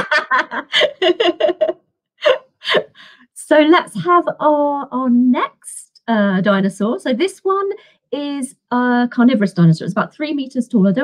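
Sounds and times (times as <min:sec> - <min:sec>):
person laughing: 0:00.0 - 0:02.9.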